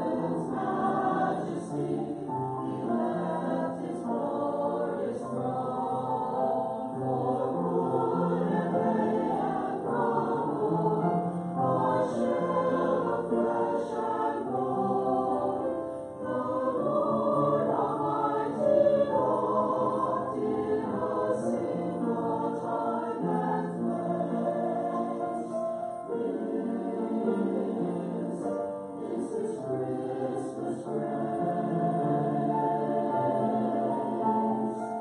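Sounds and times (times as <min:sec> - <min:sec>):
church choir singing: 0:00.0 - 0:35.0.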